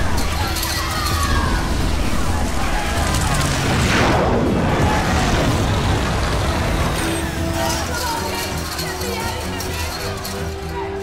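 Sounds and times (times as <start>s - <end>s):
flamethrower fire rushing: 0.0s - 7.9s
film score music: 0.0s - 11.0s.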